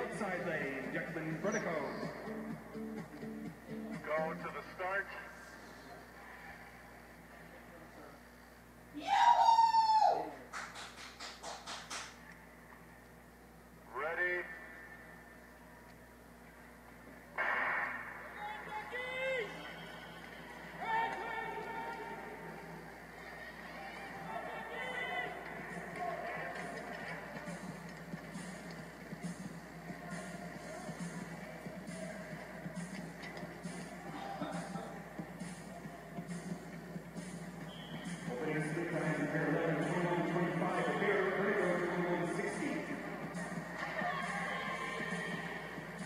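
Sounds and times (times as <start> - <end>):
indistinct voices on tv: 0.0 - 8.8, 13.8 - 46.0
sharp loud burst: 17.4 - 18.4.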